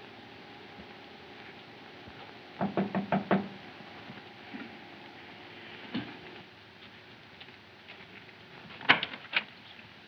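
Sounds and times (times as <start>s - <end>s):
knocking on door: 2.6s - 3.6s.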